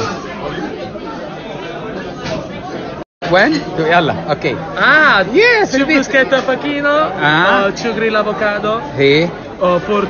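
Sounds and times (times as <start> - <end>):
diners talking babble: 0.0 - 10.0.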